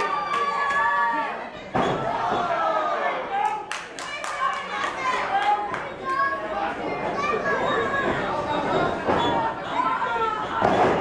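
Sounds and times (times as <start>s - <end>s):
crowd shouting: 0.0s - 3.5s.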